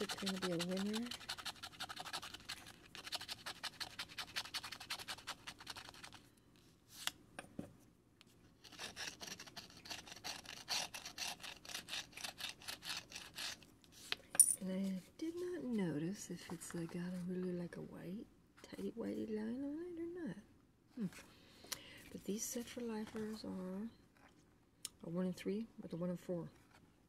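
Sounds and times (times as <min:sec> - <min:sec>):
scratcher scraping lottery ticket: 0:00.0 - 0:06.2.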